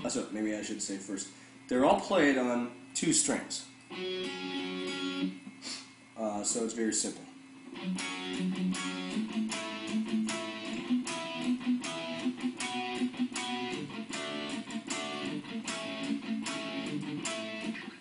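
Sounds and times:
guitar riff picked steadily: 0:03.9 - 0:05.6, 0:07.7 - 0:18.0.

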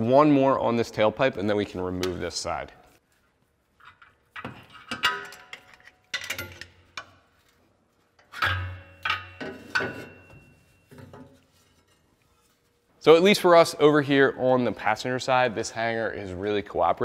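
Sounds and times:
metal exhaust pipe knocking and clanking: 0:08.2 - 0:12.0.

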